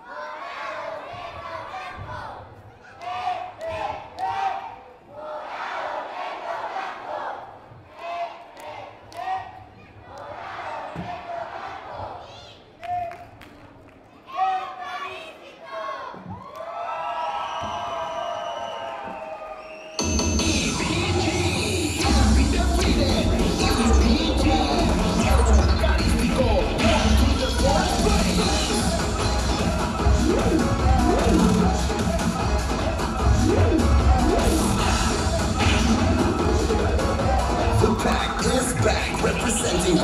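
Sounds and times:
children shouting a chant: 0.0s - 12.7s
crowd cheering: 15.8s - 40.0s
music with heavy bass beat: 20.0s - 40.0s.

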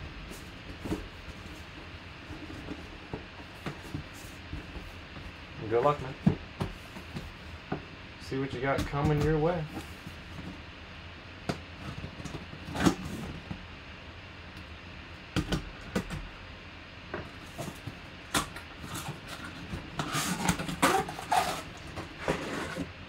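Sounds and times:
cardboard and plastic rustling: 0.1s - 7.9s, 17.2s - 23.0s
knife slitting packing tape: 18.4s - 21.8s.

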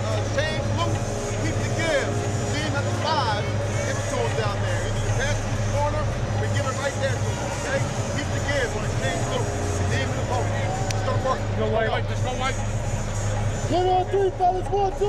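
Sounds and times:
crowd voices overlapping: 0.0s - 15.0s
people talking close by: 0.0s - 15.0s
steady low hum: 0.0s - 15.0s.

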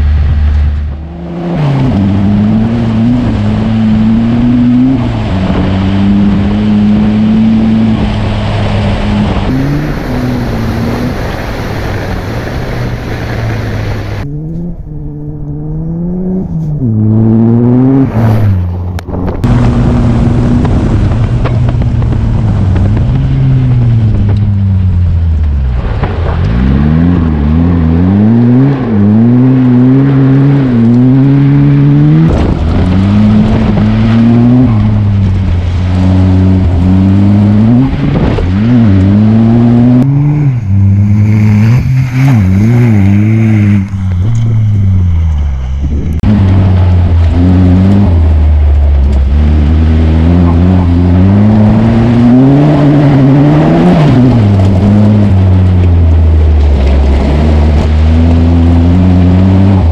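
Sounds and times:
car engine revving hard: 0.0s - 24.4s, 25.8s - 59.9s.

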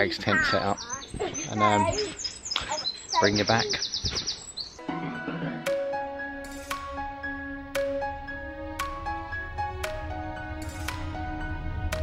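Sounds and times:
songbird trilling: 0.4s - 4.8s
background music with held tones: 4.8s - 12.0s.

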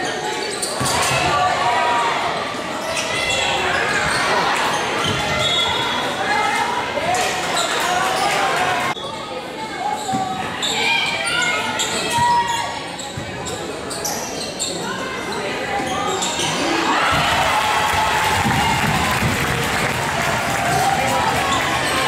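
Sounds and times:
crowd voices in large hall: 0.0s - 22.0s.

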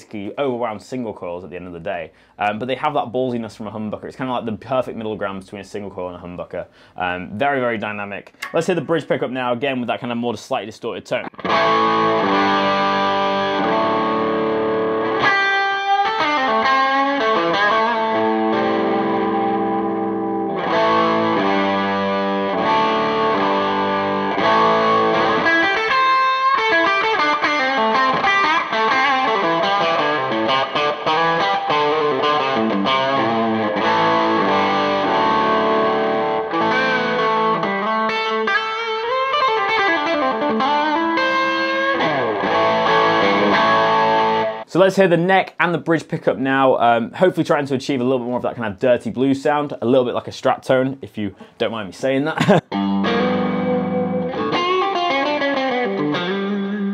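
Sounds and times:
overdriven electric guitar: 11.2s - 44.7s, 52.6s - 56.9s.

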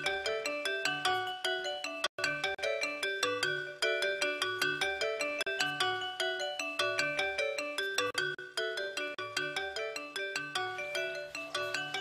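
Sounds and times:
bright keyboard notes: 0.0s - 12.0s.

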